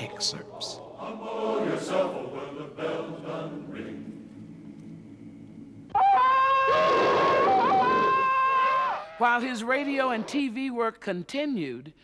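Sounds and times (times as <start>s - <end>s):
man's yodelling jungle call: 5.9s - 9.2s.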